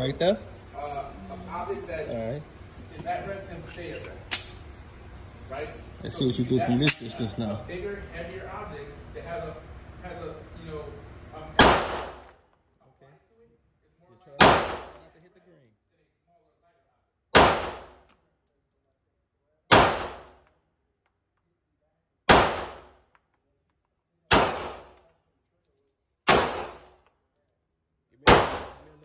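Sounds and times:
pistol shots echoing indoors: 11.6 - 12.4, 14.4 - 15.2, 17.3 - 18.2, 19.7 - 20.5, 22.3 - 23.2, 24.3 - 25.1, 26.2 - 27.2, 28.2 - 29.0.

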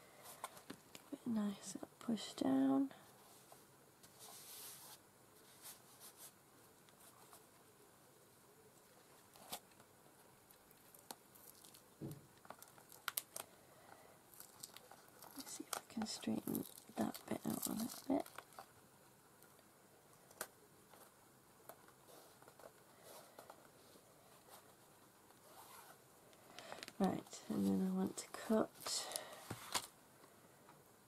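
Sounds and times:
paper crinkling and rustling: 10.5 - 13.5, 14.3 - 18.8, 26.6 - 29.9.

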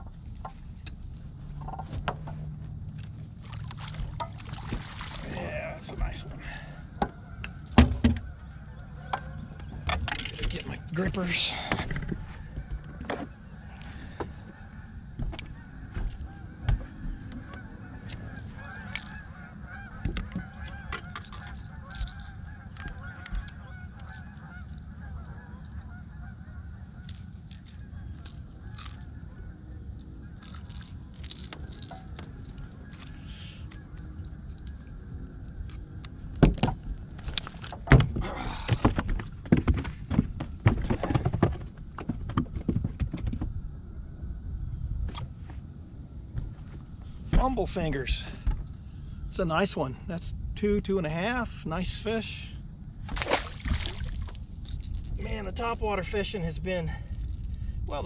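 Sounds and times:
flock of birds honking: 5.3 - 30.4
loud knocks and rattles on boat: 7.0 - 8.4, 36.4 - 43.7, 47.3 - 47.8
faint steady high hum: 43.6 - 58.0.

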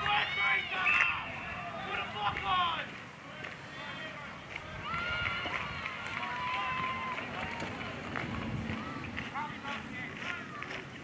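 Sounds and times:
distant shouting and calling: 0.0 - 11.0.

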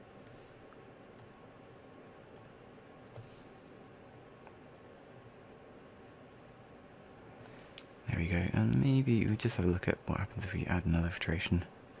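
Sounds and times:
computer mouse clicks: 0.2 - 3.4.

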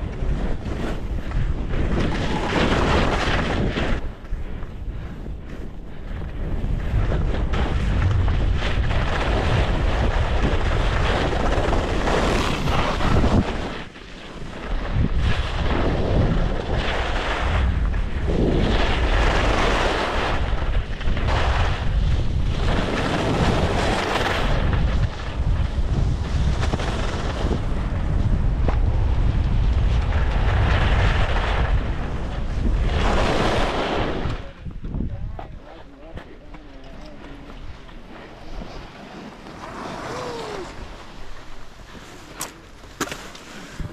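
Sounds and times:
skis sliding through snow: 0.0 - 34.5, 35.6 - 43.9
wind buffeting microphone: 0.0 - 42.8.

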